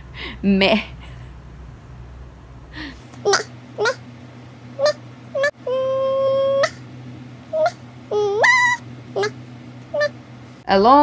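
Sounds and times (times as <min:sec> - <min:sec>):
low room hum: 0:00.0 - 0:11.0
baby babbling squeals: 0:03.3 - 0:04.0, 0:07.6 - 0:09.4.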